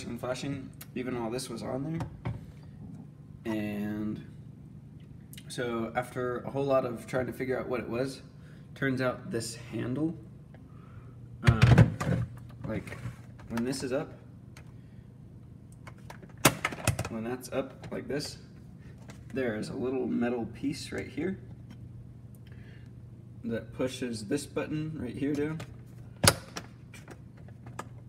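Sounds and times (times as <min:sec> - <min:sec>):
low steady hum: 0:00.0 - 0:28.0.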